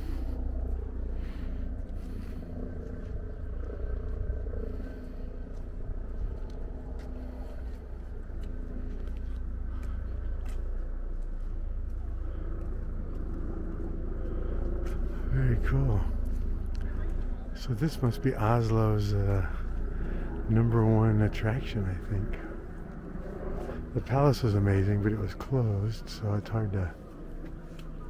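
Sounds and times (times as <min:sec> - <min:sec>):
steady low rumble: 0:00.0 - 0:28.0.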